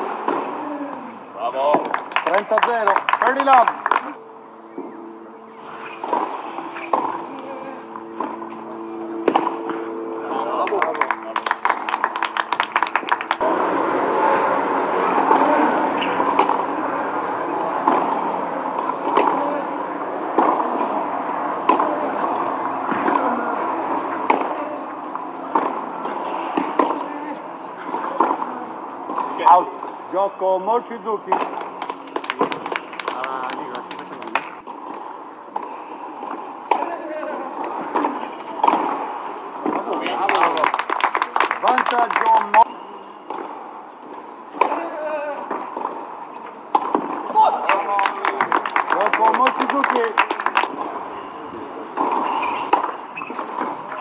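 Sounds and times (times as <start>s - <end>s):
murmur of voices: 0.0s - 54.0s
racket striking tennis ball: 5.8s - 10.1s, 15.0s - 16.8s, 17.4s - 19.6s, 20.3s - 21.0s, 21.6s - 24.6s, 25.4s - 27.1s, 34.4s - 37.0s, 37.6s - 40.0s, 43.3s - 46.1s, 46.7s - 47.3s, 51.9s - 54.0s.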